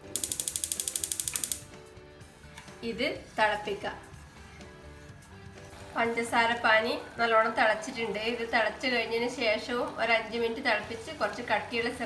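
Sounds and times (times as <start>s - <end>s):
spark igniter clicking rapidly: 0.0s - 1.7s
soft background music: 0.0s - 12.0s.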